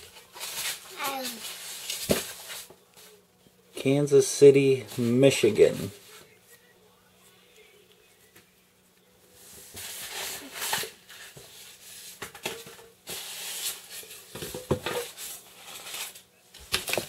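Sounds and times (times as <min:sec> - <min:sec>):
paper rustling and crinkling: 0:00.0 - 0:03.1, 0:09.6 - 0:17.0.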